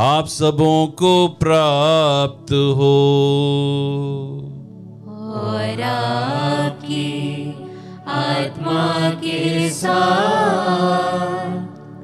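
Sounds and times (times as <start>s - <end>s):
choir chant-like singing: 5.1s - 12.0s.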